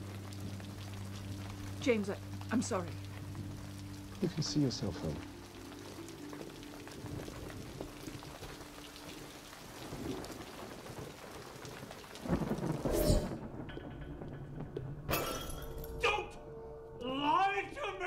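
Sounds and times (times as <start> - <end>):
steady rain hissing: 0.0 - 15.6
thunder rumbling: 6.7 - 15.1
loud thunder crash: 12.2 - 15.0.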